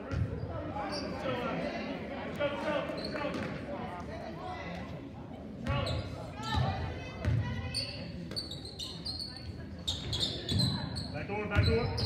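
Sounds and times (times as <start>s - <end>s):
voices echoing: 0.0s - 12.0s
sneaker squeaks: 0.1s - 1.4s, 2.9s - 3.5s, 5.6s - 12.0s.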